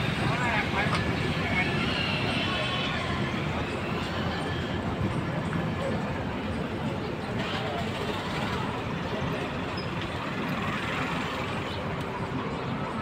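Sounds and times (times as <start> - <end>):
vehicle engines running: 0.0 - 13.0.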